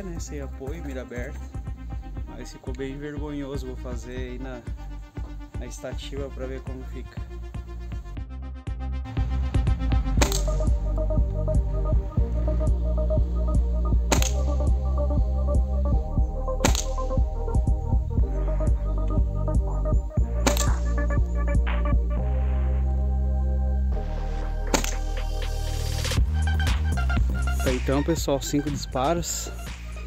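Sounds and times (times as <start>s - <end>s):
electronic music with bass beat: 0.0s - 30.0s
air rifle shots: 10.1s - 10.8s, 14.0s - 14.7s, 16.6s - 17.2s, 20.4s - 21.1s, 24.6s - 25.2s.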